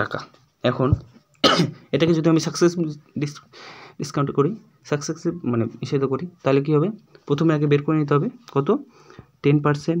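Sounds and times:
man speaking: 0.0s - 10.0s
sharp cough: 1.4s - 1.9s.

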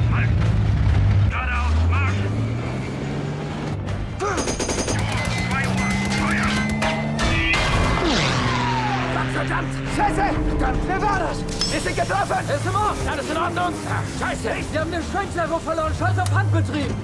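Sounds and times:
machine-gun fire: 4.4s - 6.5s.

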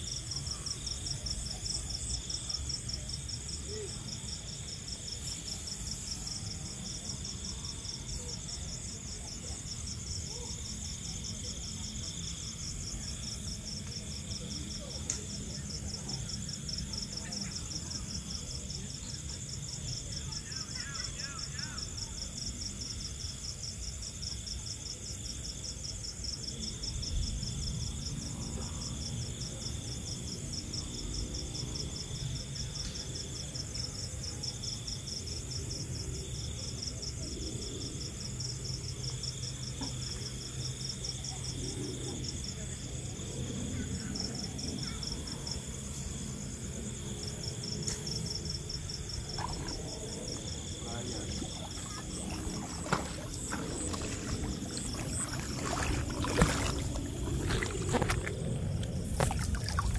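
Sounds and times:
crickets chirring: 0.0s - 59.9s.

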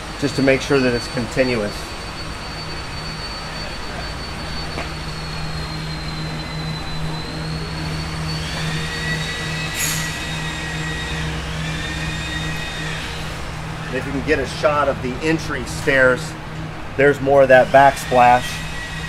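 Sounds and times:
faint high whining tones: 0.0s - 19.0s
low mechanical hum: 0.0s - 19.0s.

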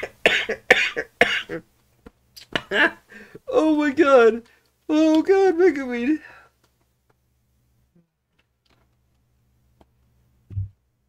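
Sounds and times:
man coughing: 0.0s - 1.6s.

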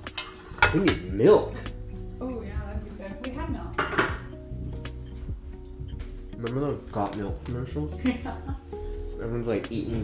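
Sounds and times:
dishes and pan handled: 0.0s - 1.1s, 3.8s - 4.4s
dish clattering down: 3.8s - 4.3s.

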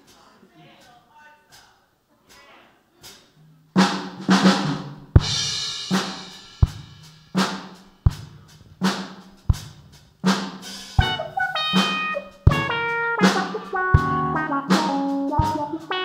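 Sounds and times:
drum kit beat: 3.0s - 16.0s
cymbal crash: 5.1s - 8.4s.

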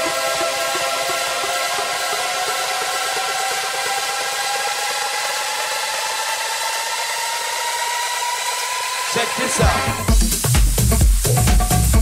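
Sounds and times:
white-noise hiss with rising tone: 0.0s - 11.9s
electronic house music breakdown: 0.0s - 12.0s.

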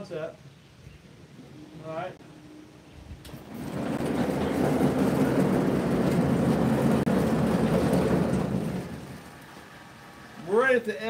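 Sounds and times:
sawmill motor rumble: 3.3s - 10.7s.

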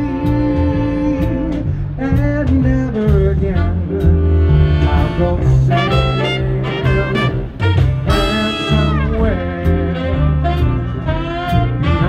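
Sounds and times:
trombone and trumpet: 0.0s - 1.7s, 2.9s - 12.0s
man singing: 0.0s - 10.7s
upright bass: 0.0s - 12.0s.

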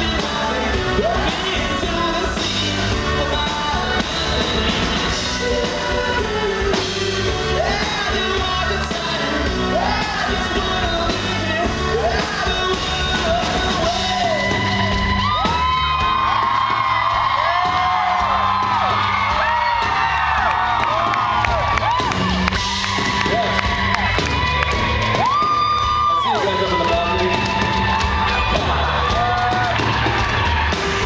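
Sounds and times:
audience whooping and cheering: 0.0s - 31.0s
live band playing: 0.0s - 31.0s.

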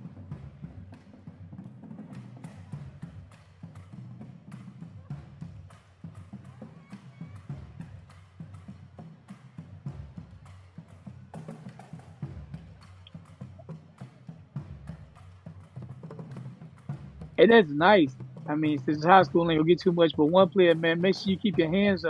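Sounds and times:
snare drums: 0.0s - 22.0s
tenor drums: 0.0s - 22.0s.

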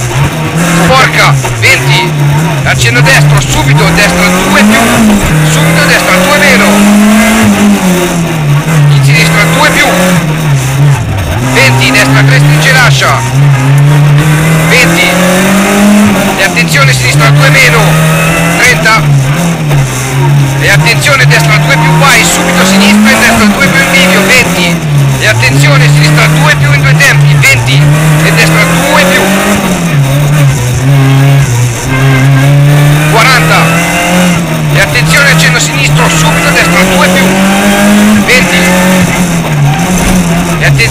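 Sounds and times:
rally car engine revving: 0.0s - 40.9s.

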